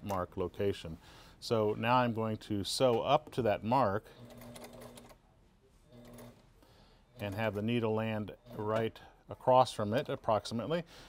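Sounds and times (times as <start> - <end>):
faint sewing machine stitching: 4.1 - 5.2, 5.9 - 6.4
sewing machine motor humming: 4.2 - 5.2, 5.9 - 6.4.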